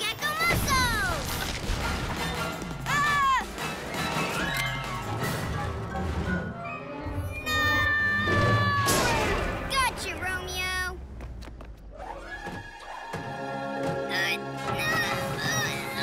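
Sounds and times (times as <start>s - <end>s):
action background music: 0.0s - 10.5s.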